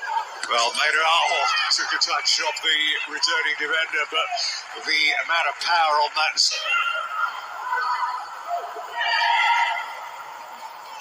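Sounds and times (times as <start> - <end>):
players shouting: 0.0 - 11.0.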